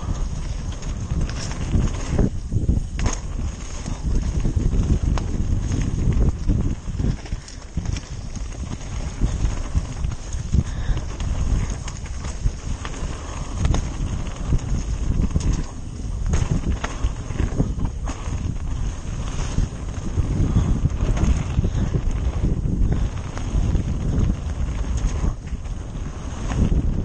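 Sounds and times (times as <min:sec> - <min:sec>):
bike rattling and knocking: 0:00.0 - 0:27.0
low rumble of tyres and air: 0:00.0 - 0:27.0.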